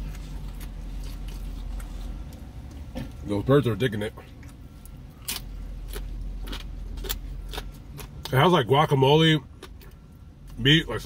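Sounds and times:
crunchy shell being chewed: 0.0 - 3.2, 4.4 - 8.4, 9.5 - 10.6
steady low rumble: 0.0 - 11.0.

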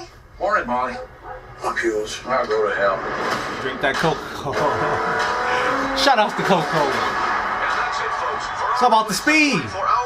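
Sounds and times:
racing car engine at high revs: 2.9 - 8.8.

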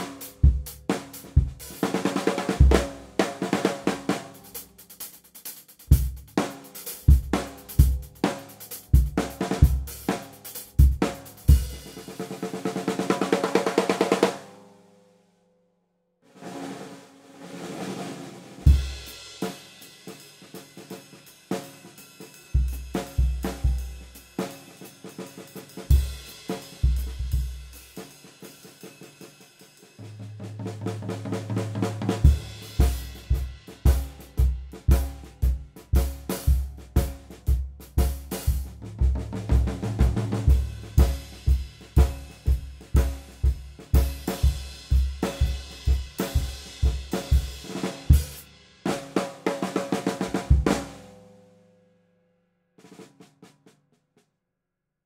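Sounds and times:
bass drum beats: 0.0 - 4.5, 5.8 - 12.0, 22.6 - 24.0, 26.8 - 27.7, 30.4 - 48.4
snare drum strokes: 0.0 - 14.4, 16.4 - 22.0, 22.7 - 51.2
cymbals: 32.0 - 35.5.

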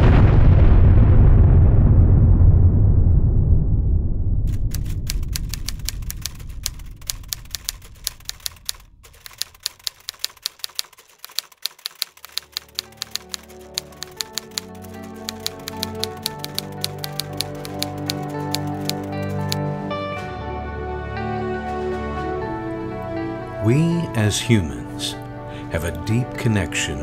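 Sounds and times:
low rumble: 0.0 - 9.2
typewriter keys clacking: 4.5 - 19.6
soft music with held notes: 12.4 - 27.0.

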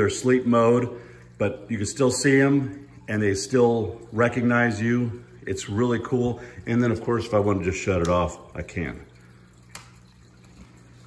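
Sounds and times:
filter pump low hum: 0.0 - 11.0
water trickling: 0.0 - 11.0.

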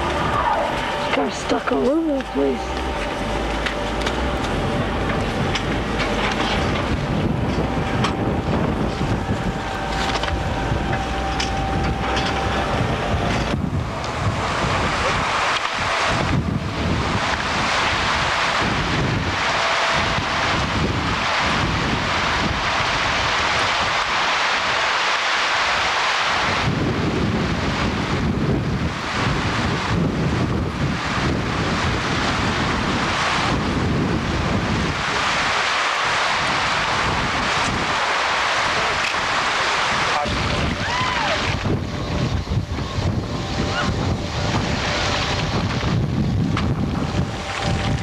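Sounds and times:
strong wind on microphone: 0.0 - 48.0.

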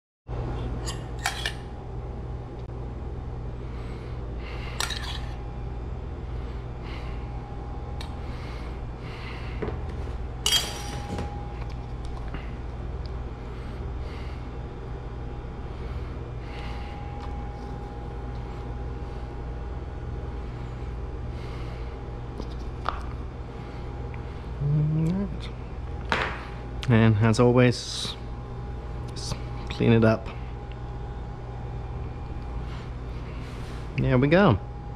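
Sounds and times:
low machine hum with whine: 0.3 - 34.9.

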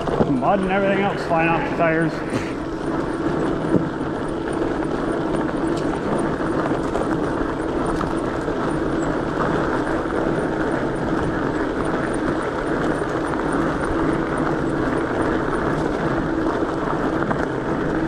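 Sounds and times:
bike tires rolling over dirt: 0.0 - 18.0
low steady hum: 0.0 - 18.0.

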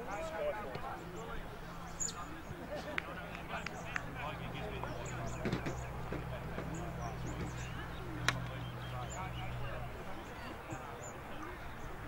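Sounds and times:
players and spectators shouting: 0.0 - 1.7
outdoor background noise: 0.0 - 12.0.

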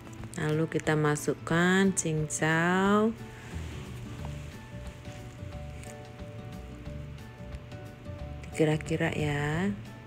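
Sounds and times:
soft music with held notes: 0.0 - 10.0.

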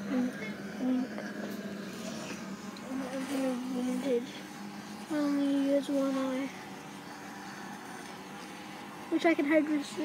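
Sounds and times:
child humming: 0.0 - 1.4
steady low hum: 0.0 - 10.0.

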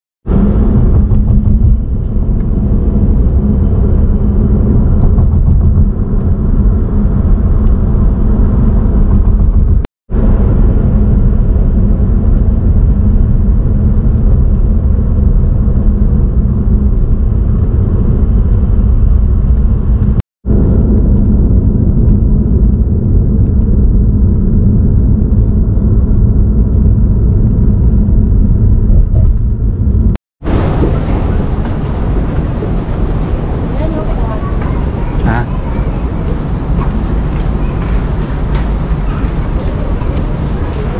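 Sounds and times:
car interior rumble: 0.3 - 40.9.

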